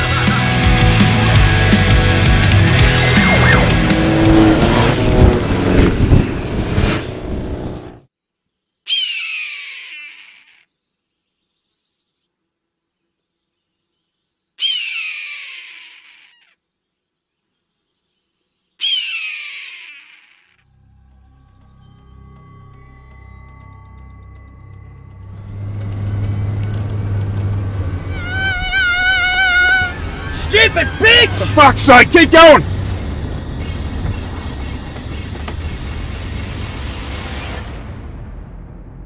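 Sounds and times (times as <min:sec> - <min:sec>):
loud music: 0:00.0 - 0:05.4, 0:29.6 - 0:33.0
engine noise: 0:00.0 - 0:08.1, 0:20.9 - 0:38.9
bird of prey screaming: 0:03.2 - 0:03.7, 0:08.9 - 0:10.7, 0:14.6 - 0:16.6, 0:18.8 - 0:20.7, 0:28.1 - 0:31.6.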